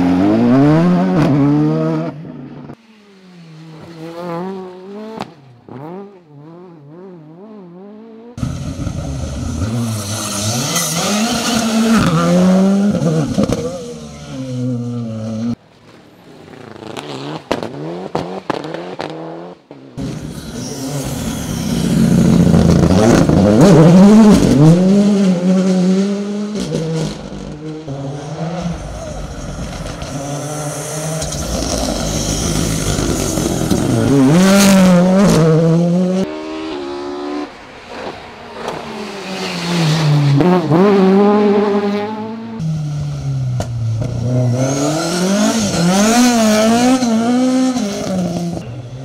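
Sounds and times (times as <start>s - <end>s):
rally car engines revving: 0.0s - 15.6s, 16.2s - 49.0s.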